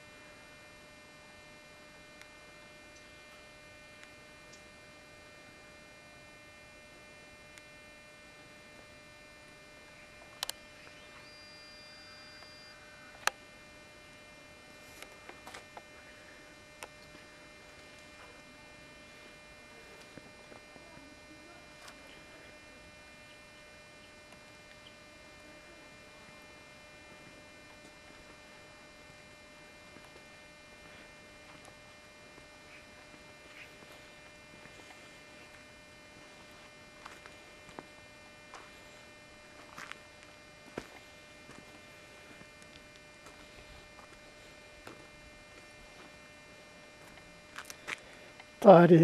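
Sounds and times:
faint electrical hum: 0:00.0 - 0:49.0.

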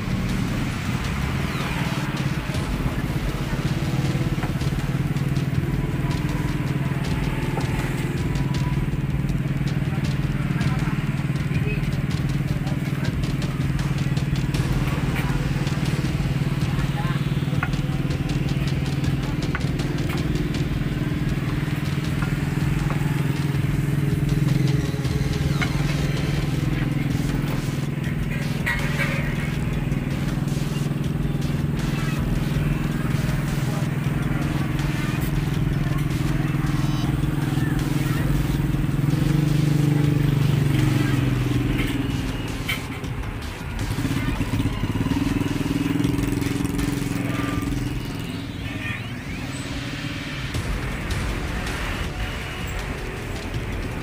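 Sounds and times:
engine idling: 0:00.0 - 0:54.0.

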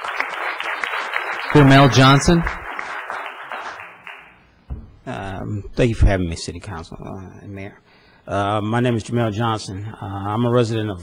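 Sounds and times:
audience applause: 0:00.0 - 0:04.3
short thump: 0:04.7 - 0:05.1.

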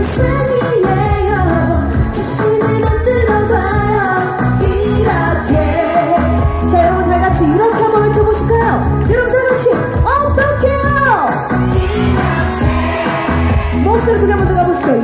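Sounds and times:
pop backing track with beat: 0:00.0 - 0:15.0
woman singing into microphone: 0:00.0 - 0:15.0.

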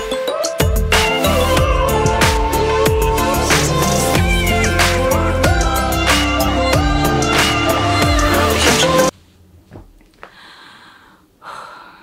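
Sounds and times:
woman breathing: 0:10.2 - 0:12.0.

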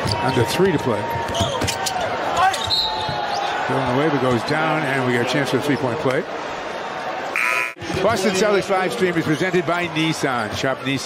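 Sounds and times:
sneakers squeaking: 0:00.0 - 0:00.4, 0:01.1 - 0:03.5
crowd noise: 0:00.0 - 0:11.0.

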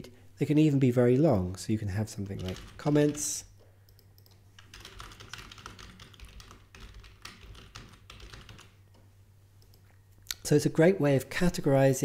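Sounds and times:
typing on computer keyboard: 0:02.1 - 0:08.8.

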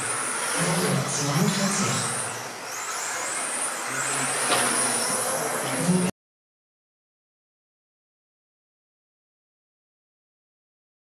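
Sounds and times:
high-pitched electric motor whine: 0:00.0 - 0:06.1
toy cars running: 0:00.0 - 0:06.1.

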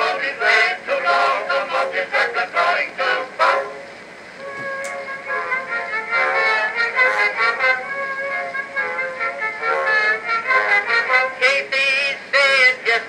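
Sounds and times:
phonograph surface hiss: 0:00.0 - 0:13.0
instrumental band music: 0:04.4 - 0:11.4.

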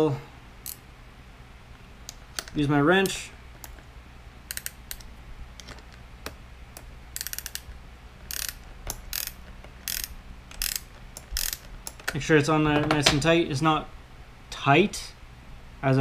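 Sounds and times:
wrench clicking on metal: 0:00.6 - 0:00.8, 0:04.5 - 0:12.2
wrench scraping: 0:04.5 - 0:12.2.

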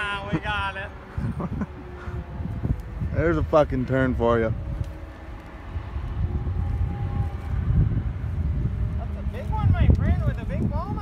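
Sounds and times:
distant machine drone: 0:00.0 - 0:11.0
wind buffeting microphone: 0:00.0 - 0:11.0.

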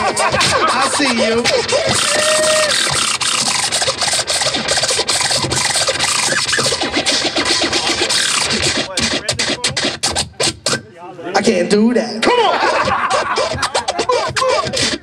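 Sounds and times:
hip-hop beat: 0:00.0 - 0:15.0
vinyl scratching on turntable: 0:00.0 - 0:15.0.

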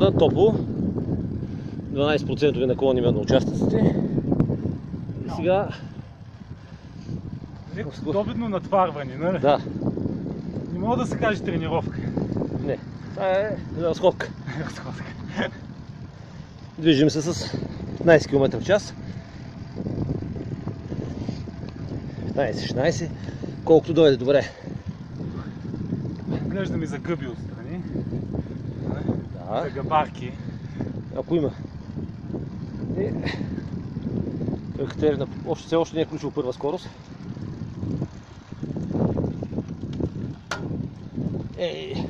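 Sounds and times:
bicycle tyre and road noise: 0:00.0 - 0:42.0
wind on microphone: 0:00.0 - 0:42.0.

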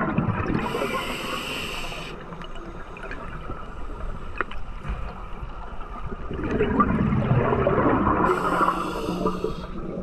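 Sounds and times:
water bubbling and gurgling: 0:00.0 - 0:10.0
regulator breathing hiss: 0:00.6 - 0:02.2, 0:08.3 - 0:09.9.

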